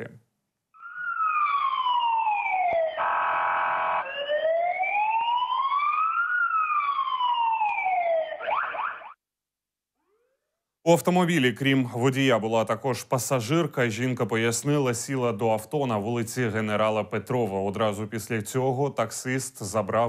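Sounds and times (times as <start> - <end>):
police siren wailing: 0.8 - 9.2
buzzy horn tone: 3.0 - 4.0.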